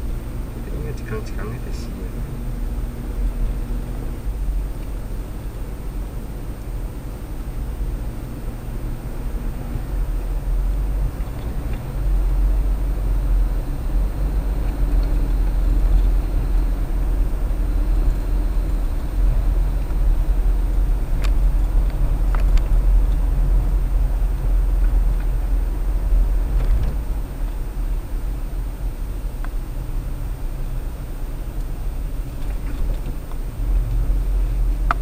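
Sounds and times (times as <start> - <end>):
car engine and tyre noise: 0.0 - 35.0.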